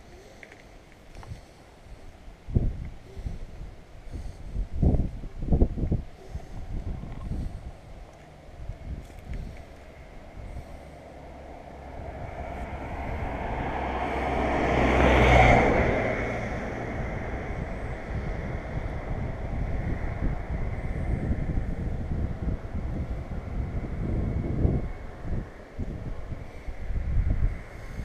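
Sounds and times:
low rumbling background noise: 0.0s - 28.0s
vehicle passing: 7.1s - 28.0s.

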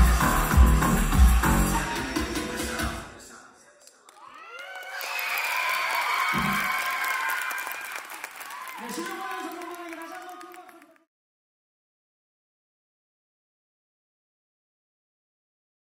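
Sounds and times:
music: 0.0s - 3.2s
applause: 4.1s - 11.1s
audience cheering and screaming: 4.2s - 10.4s.

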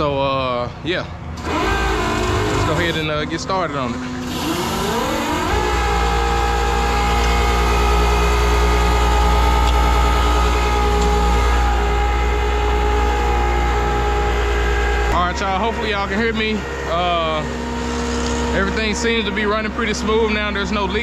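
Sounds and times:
pump whining and running: 0.0s - 21.0s.

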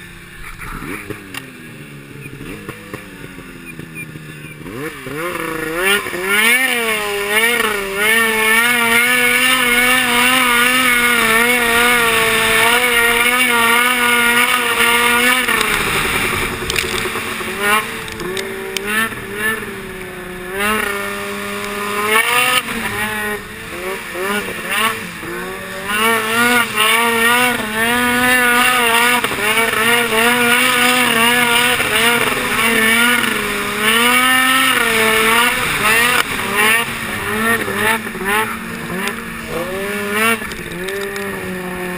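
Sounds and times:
snowmobile engine running: 0.0s - 41.9s.

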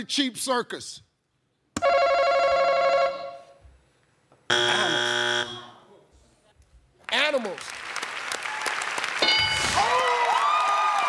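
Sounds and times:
game show buzzer: 4.5s - 5.8s.

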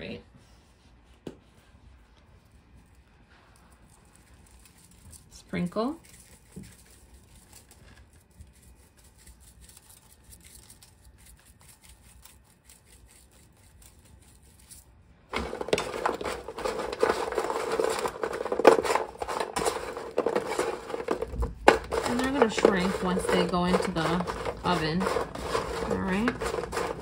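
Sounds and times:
bread cubes clattering in metal pan: 15.3s - 27.0s.

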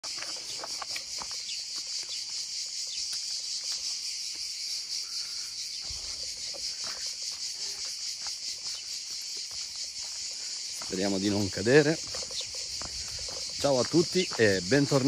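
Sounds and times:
insects buzzing: 0.0s - 15.0s.

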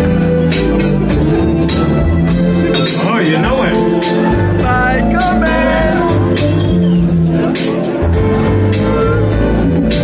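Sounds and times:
bass line: 0.0s - 10.0s
live funk band: 0.0s - 10.0s.

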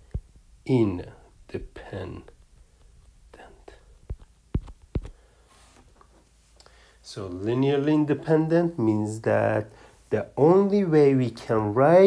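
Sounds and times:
faint room hum: 0.0s - 12.0s
man speaking: 0.6s - 2.4s, 3.3s - 3.9s, 7.0s - 12.0s
soft breathy whisper: 3.3s - 4.2s.

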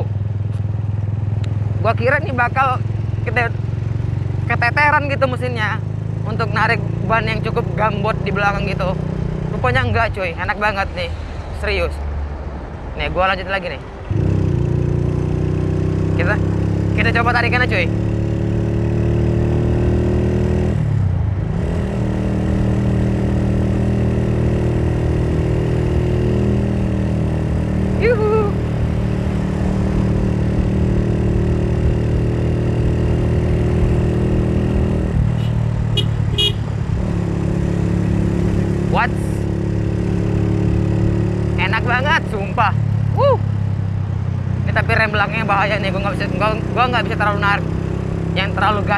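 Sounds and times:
motorcycle engine under throttle: 14.2s - 20.8s.

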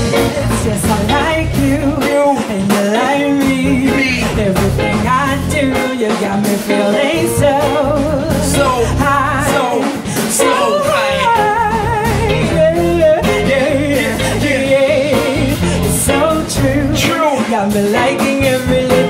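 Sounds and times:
bass guitar: 0.0s - 19.0s
drums: 0.0s - 19.0s
electric guitar: 0.0s - 19.0s
woman singing: 0.0s - 19.0s.

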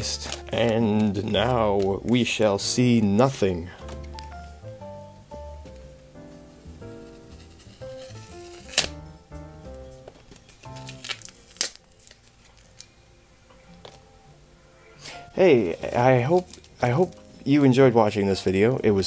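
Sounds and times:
trading cards clicking: 0.0s - 2.3s, 8.0s - 9.0s, 10.0s - 12.9s
light melodic background music: 0.0s - 19.0s.

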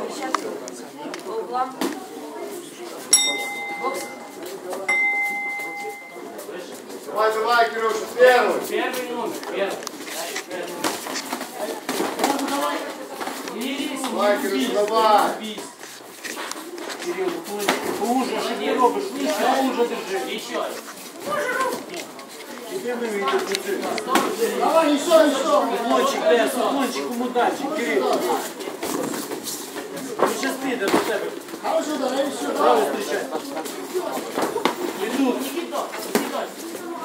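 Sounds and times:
busy voices in a hall: 0.0s - 37.0s
people shouting and talking: 0.0s - 37.0s.

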